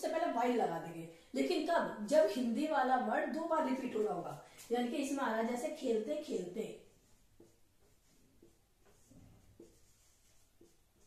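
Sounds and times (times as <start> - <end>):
marker pen on whiteboard: 1.4 - 11.0.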